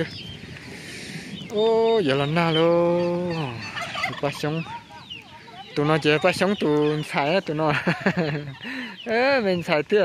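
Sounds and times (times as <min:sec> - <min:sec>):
fowl calling: 0:00.6 - 0:09.6.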